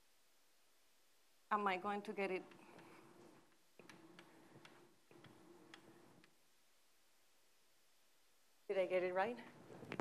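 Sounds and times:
chalk tapping on blackboard: 0:02.5 - 0:06.2.

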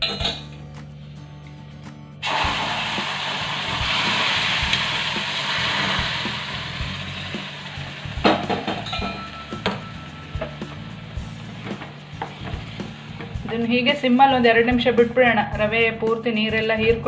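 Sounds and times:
background music: 0:00.0 - 0:17.0
water splashing and sizzling in a hot pan: 0:02.2 - 0:13.4
metallic knocks of saucepan: 0:08.2 - 0:10.5.

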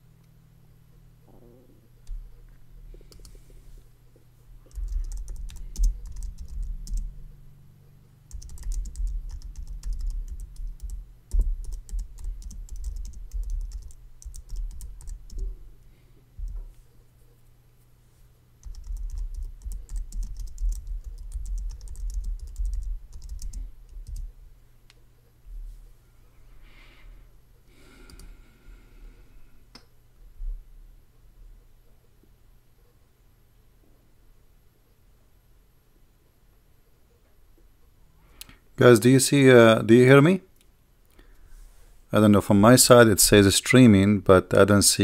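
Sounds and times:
computer keyboard typing: 0:03.0 - 0:03.4, 0:04.6 - 0:07.2, 0:08.3 - 0:15.5, 0:18.6 - 0:24.3, 0:28.1 - 0:28.3.

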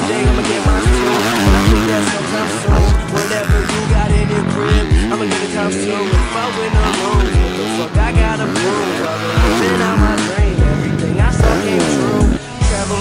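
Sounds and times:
dirt bike engine revving: 0:00.0 - 0:13.0
hip-hop backing track: 0:00.0 - 0:13.0.

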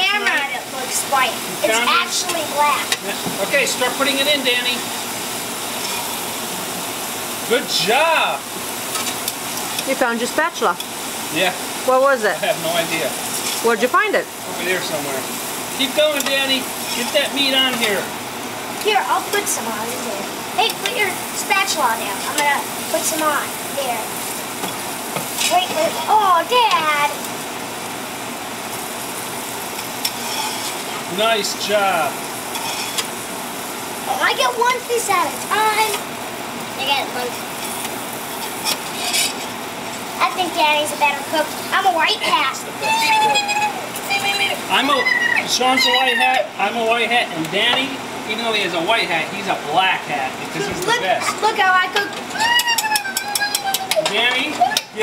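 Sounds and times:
meat sizzling on a griddle: 0:00.0 - 0:55.0
spatula clicking against pan: 0:52.6 - 0:54.2.

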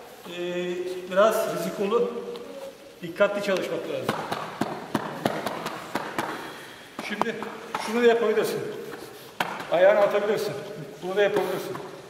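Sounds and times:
large hall background noise: 0:00.0 - 0:12.0.

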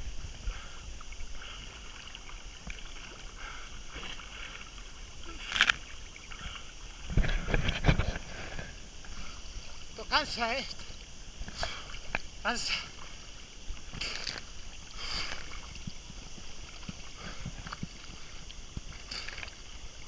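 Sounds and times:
water lapping and splashing: 0:00.0 - 0:20.0.

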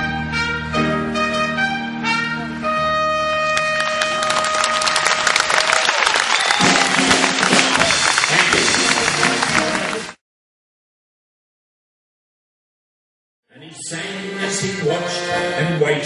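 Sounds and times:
big band held brass note: 0:00.0 - 0:05.5, 0:06.5 - 0:10.2
audience applause and cheering: 0:03.6 - 0:10.2.

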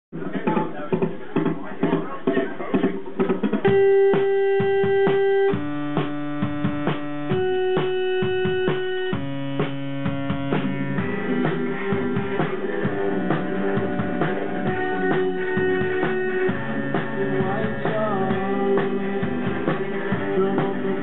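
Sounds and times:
chatter: 0:00.2 - 0:03.7
synthesizer chords: 0:03.6 - 0:21.0.

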